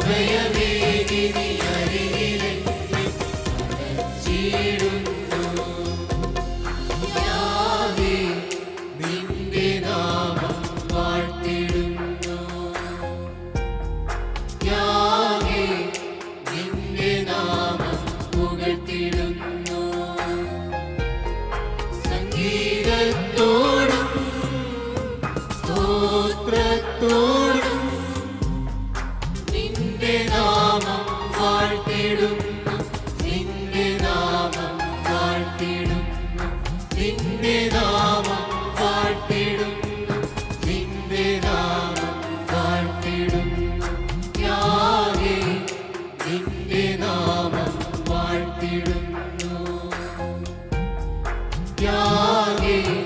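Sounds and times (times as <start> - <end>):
steady percussive beat: 0.0 - 12.5, 21.6 - 27.4, 28.4 - 34.8, 35.7 - 49.8, 50.7 - 53.0
percussion hits: 0.0 - 13.0
choir singing: 0.0 - 13.3, 14.6 - 20.6, 21.9 - 28.7, 29.3 - 50.6, 51.8 - 53.0.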